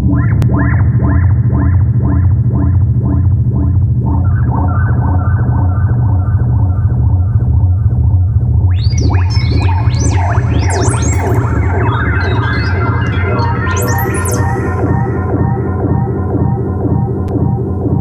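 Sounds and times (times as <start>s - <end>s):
deep synth bass drone: 0.0s - 18.0s
high sweeping chirp tones: 8.7s - 15.6s
fast repeating synth notes: 8.7s - 18.0s.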